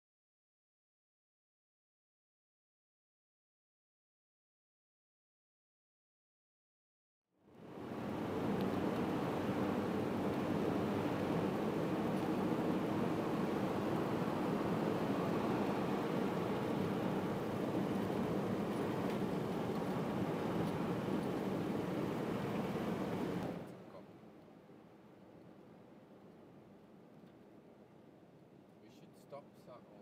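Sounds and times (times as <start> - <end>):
car road and engine noise: 7.5 - 26.2.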